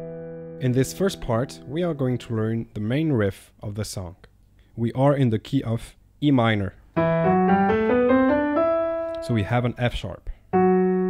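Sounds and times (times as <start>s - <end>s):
piano playing ascending scale: 0.0s - 2.3s, 7.0s - 9.7s, 10.6s - 11.0s.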